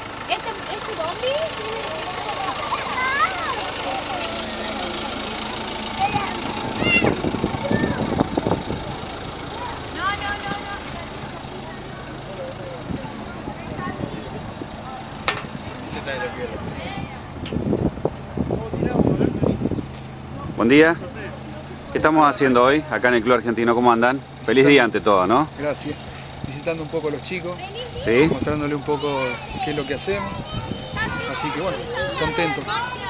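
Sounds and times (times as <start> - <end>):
children's voices and calls: 0.0 - 33.0
vehicle engine idling: 0.0 - 33.0.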